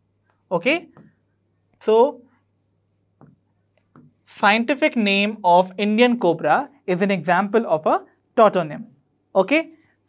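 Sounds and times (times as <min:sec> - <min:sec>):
marker pen writing on whiteboard: 0:00.0 - 0:06.2.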